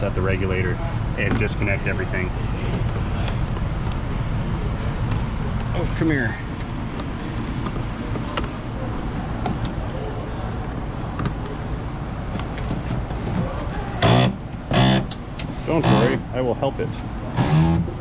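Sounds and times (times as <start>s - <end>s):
loud voice bursts: 15.7s - 16.3s.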